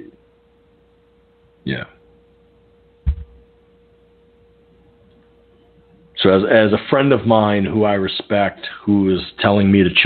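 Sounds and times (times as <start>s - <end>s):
short low thump: 3.0s - 3.4s.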